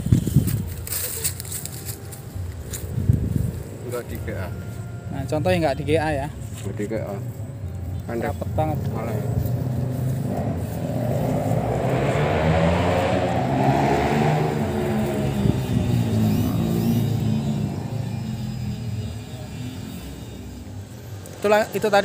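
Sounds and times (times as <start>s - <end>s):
engine running close by: 8.2s - 20.3s.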